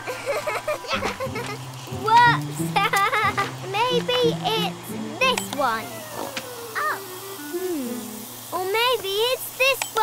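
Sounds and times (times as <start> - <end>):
cartoon child giggling: 0.0 - 1.6, 2.6 - 3.6
light background music: 0.4 - 8.7.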